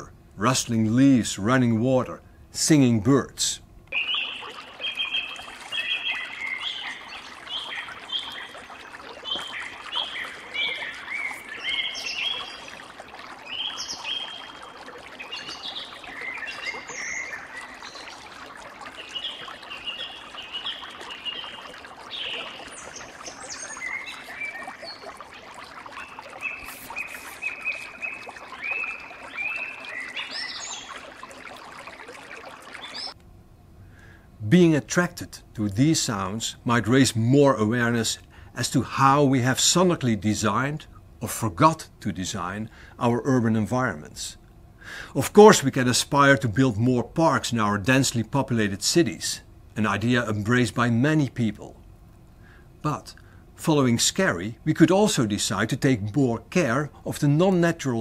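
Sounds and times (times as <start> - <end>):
birds chirping: 3.9 - 33.2
stream running over rocks: 3.9 - 33.2.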